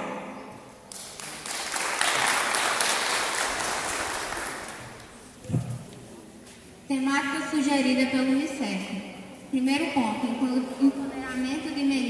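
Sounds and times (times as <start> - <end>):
audience clapping: 0.9 - 5.4.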